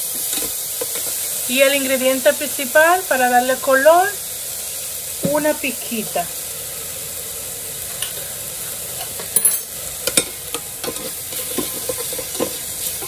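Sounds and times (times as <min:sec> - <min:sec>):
vegetables sizzling in oil: 0:00.0 - 0:13.0
metal spoon scraping pot: 0:09.5 - 0:13.0.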